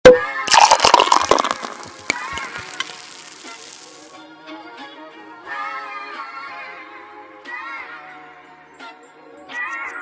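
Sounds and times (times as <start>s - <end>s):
music: 0.1s - 10.0s
crackling splatter clicks: 0.5s - 4.2s.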